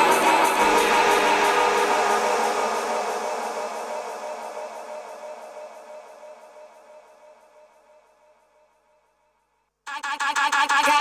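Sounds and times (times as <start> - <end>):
held synth chords: 0.0 - 6.1.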